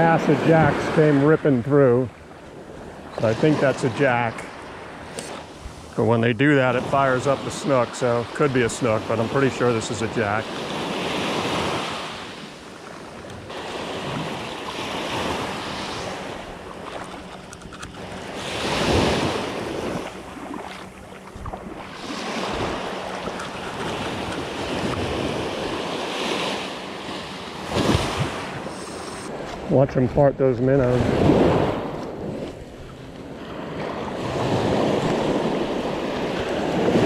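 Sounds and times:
surf washing up a beach: 0.0s - 17.2s, 18.0s - 37.0s
wind buffeting microphone: 27.6s - 37.0s.

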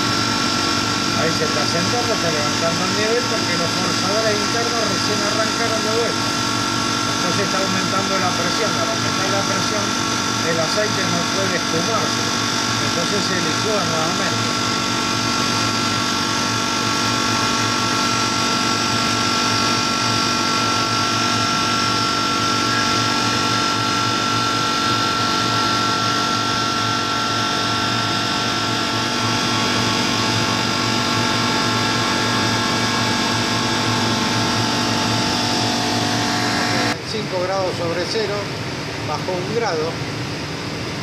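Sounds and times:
refrigeration compressor humming: 0.0s - 41.0s.

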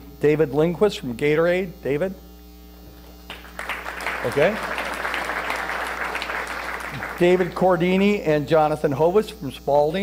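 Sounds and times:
low electrical hum: 0.0s - 10.0s
audience applauding: 3.3s - 7.8s.

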